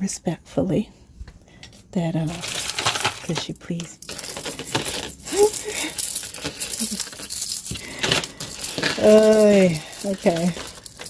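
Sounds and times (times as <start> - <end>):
light crinkling: 1.6 - 11.0
shell necklaces clicking and rattling: 2.4 - 11.0.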